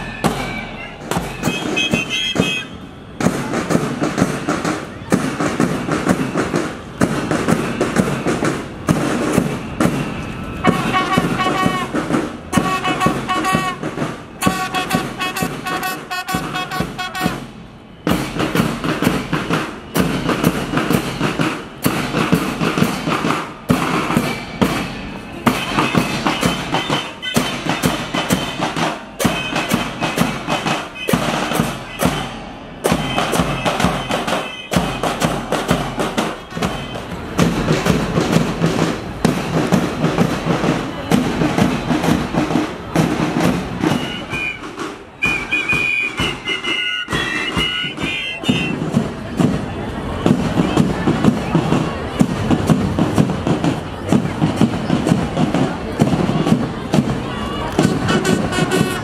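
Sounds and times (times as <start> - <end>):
bass and snare drums beating: 0.0 - 59.0
high flute melody: 43.8 - 48.8.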